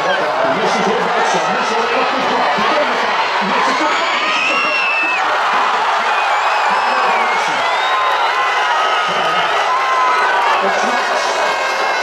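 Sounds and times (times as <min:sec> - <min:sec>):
crowd voices din: 0:00.0 - 0:12.0
shouts and whoops: 0:01.2 - 0:12.0.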